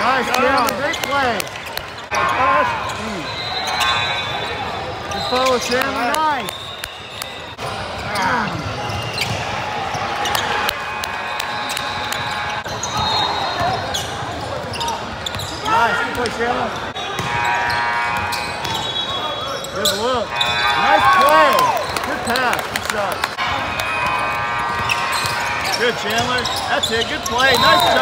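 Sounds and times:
murmur of the gym: 0.0s - 28.0s
sneaker squeak: 0.4s - 10.7s, 11.3s - 21.1s, 23.9s - 28.0s.

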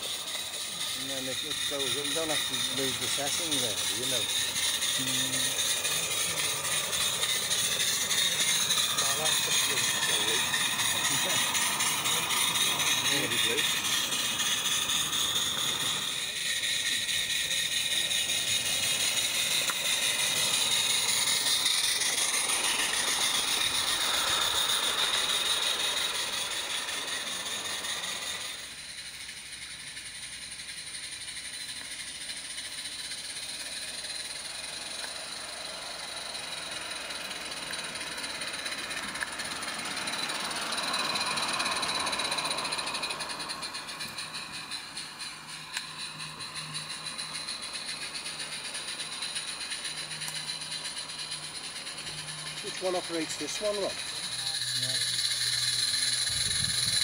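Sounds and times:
steady low hum: 0.0s - 57.0s
steam hissing: 0.0s - 57.0s
wheels rattling over track: 0.0s - 57.0s.

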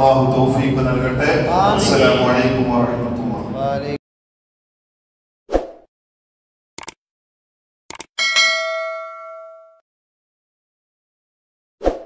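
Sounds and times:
bell ding: 8.2s - 9.8s.

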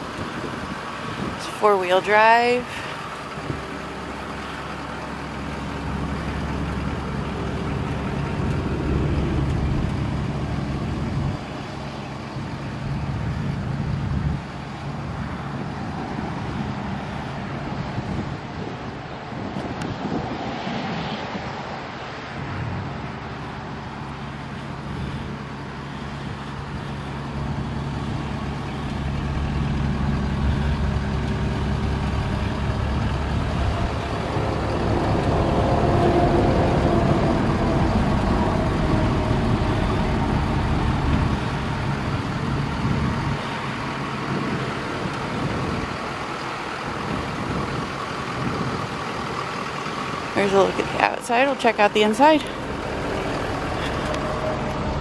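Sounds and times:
diesel engine idling: 0.0s - 19.5s, 22.7s - 55.0s.

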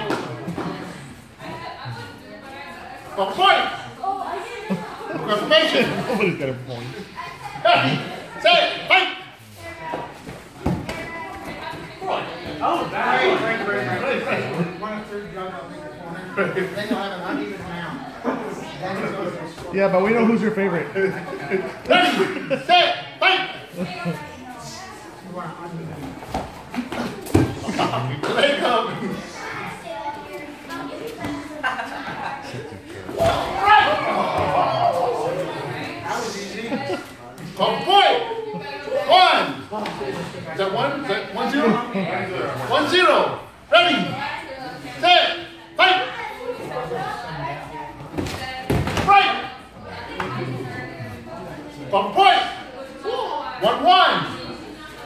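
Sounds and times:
raised voices in echoing hall: 0.0s - 55.0s.

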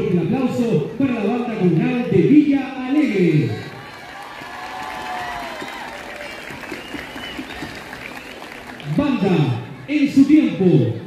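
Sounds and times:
crowd applauding: 3.6s - 9.9s.

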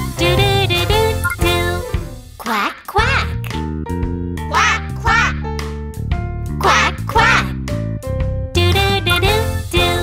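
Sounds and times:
bouncy children's song: 0.0s - 3.7s, 4.4s - 5.7s, 6.5s - 7.8s, 8.5s - 10.0s.

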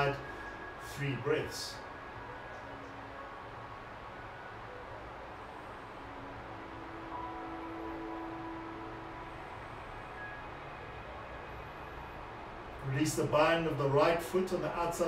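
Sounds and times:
low hum and hiss: 0.0s - 15.0s.

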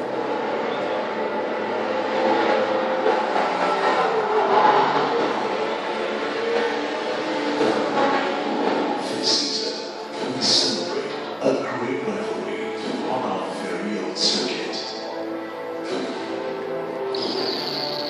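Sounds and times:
race car noise over loudspeakers: 0.0s - 18.0s.

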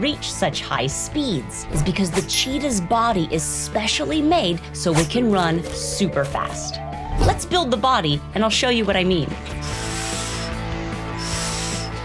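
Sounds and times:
background music: 0.0s - 12.0s
hissing air bursts: 9.6s - 10.6s, 11.2s - 12.0s.

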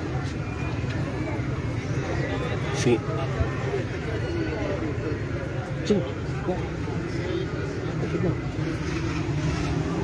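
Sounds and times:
crowd talking: 0.0s - 10.0s
vehicle traffic: 0.0s - 10.0s.

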